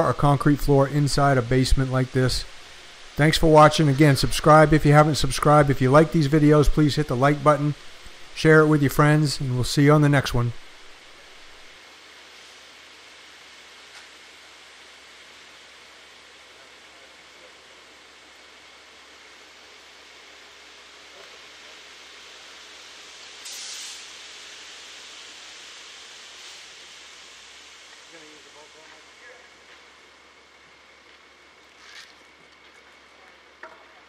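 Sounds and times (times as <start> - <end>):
steady low hiss: 0.0 - 34.0
brief rush of hiss: 23.3 - 29.1.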